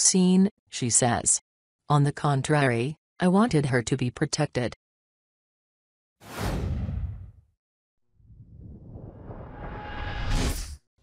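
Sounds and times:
whoosh sweeping down: 8.3s - 10.8s.

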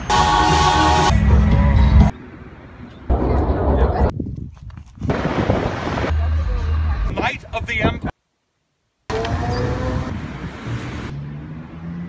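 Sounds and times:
outdoor street noise: 0.0s - 12.0s
vehicle humming: 9.1s - 12.0s.

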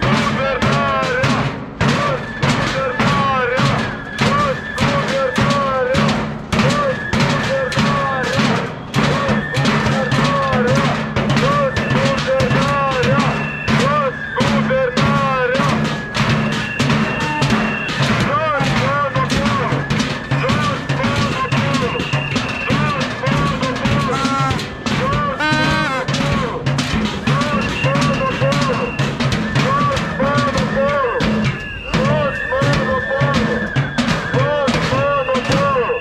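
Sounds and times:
sticks drumming on metal barrels: 0.0s - 36.0s.

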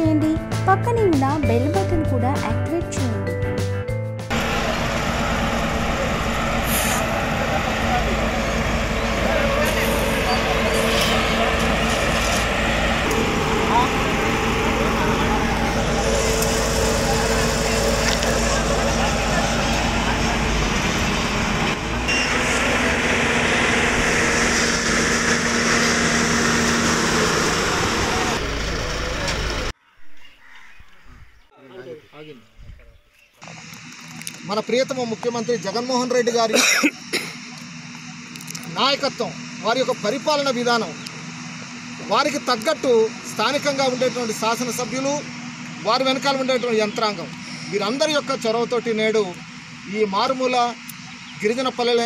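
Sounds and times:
people talking indistinctly: 0.0s - 3.3s
diesel engine rumbling: 0.0s - 29.8s, 33.4s - 52.0s.

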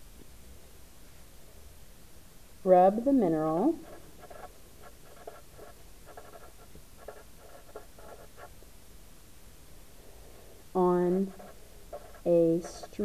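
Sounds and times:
marker writing on paper: 3.3s - 8.6s, 10.8s - 13.0s.

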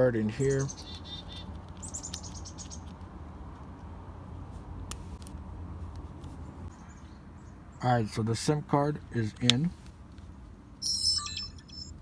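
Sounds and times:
electronic power-on chime: 10.8s - 12.0s.

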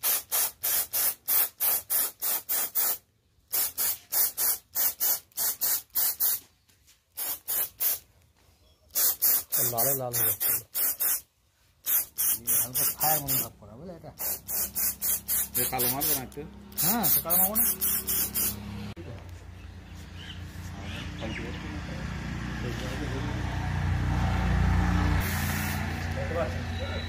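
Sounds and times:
spray gun hissing: 0.0s - 6.4s, 7.2s - 8.0s, 9.0s - 13.5s, 14.2s - 18.6s, 25.2s - 26.0s.

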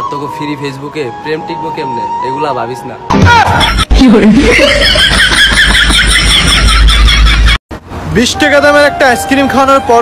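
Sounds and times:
man laughing loudly: 3.4s - 7.6s.

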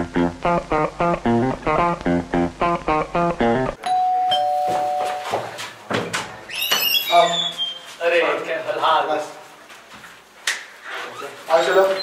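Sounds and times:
doorbell ding-dong chime: 3.8s - 5.4s.

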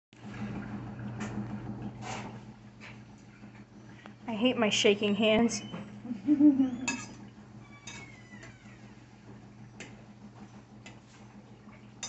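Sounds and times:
steady low hum: 0.2s - 12.0s.

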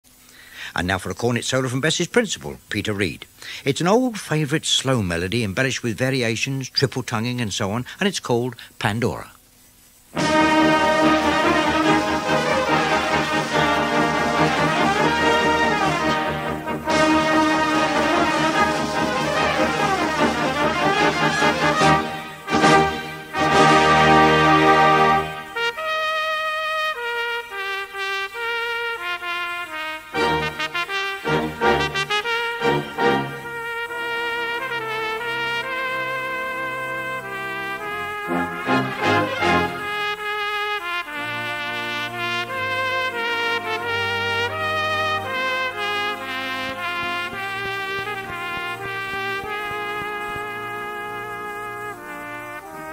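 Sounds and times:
solo cornet melody: 10.0s - 52.9s
brass band playing: 10.1s - 52.9s.

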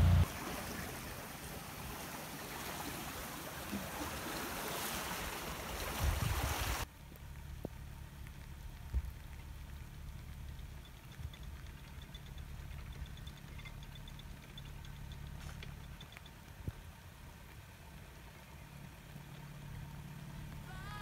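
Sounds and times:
boat diesel engine humming: 0.0s - 4.4s, 6.8s - 21.0s
water rushing: 0.0s - 6.9s
faint light ticks: 7.0s - 20.7s.

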